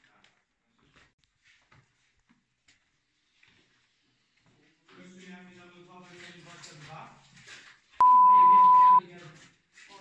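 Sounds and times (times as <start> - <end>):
censor bleep tone: 8.0 - 9.0.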